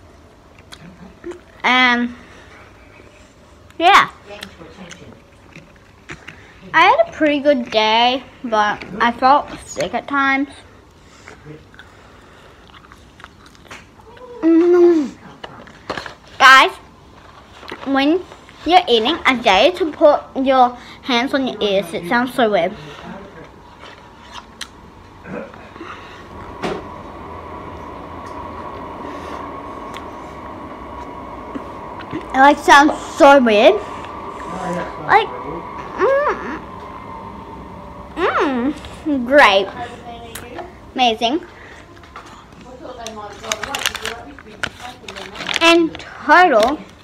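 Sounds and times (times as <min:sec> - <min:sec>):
chewing and mouth clicks: 0:00.5 - 0:01.6, 0:03.6 - 0:06.6, 0:11.2 - 0:14.3
faint high-pitched hum: 0:13.2 - 0:47.0
person humming: 0:35.9 - 0:36.6
paper receipt crackling: 0:43.0 - 0:47.0.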